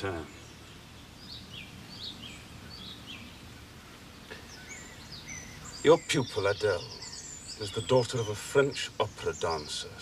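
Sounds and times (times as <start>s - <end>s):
faint outdoor background: 0.0s - 10.0s
songbirds chirping: 0.0s - 10.0s
man speaking: 7.6s - 10.0s.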